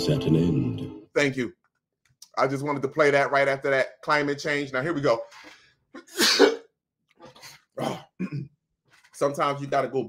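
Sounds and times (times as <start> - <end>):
man coughing: 6.0 - 6.7, 7.8 - 8.5
throat-clearing: 7.8 - 8.5.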